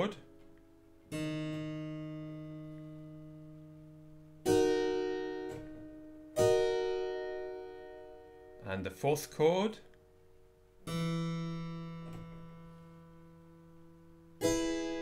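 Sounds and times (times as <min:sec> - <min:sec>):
keyboard chords ringing: 0:00.0 - 0:15.0.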